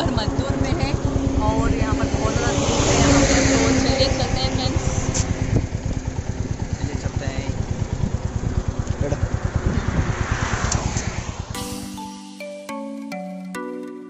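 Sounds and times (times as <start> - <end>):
wind buffeting microphone: 0.0 - 11.6
motorcycle engine running: 0.0 - 11.9.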